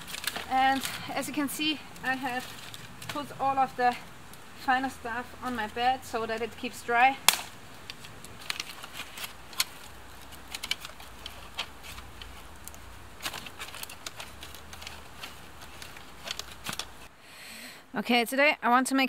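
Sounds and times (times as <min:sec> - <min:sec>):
dry sticks snapping: 0:00.0 - 0:17.1.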